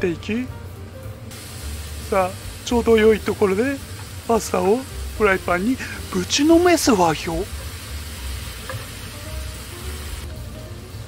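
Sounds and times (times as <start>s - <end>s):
frying pan sizzling: 1.2s - 11.0s.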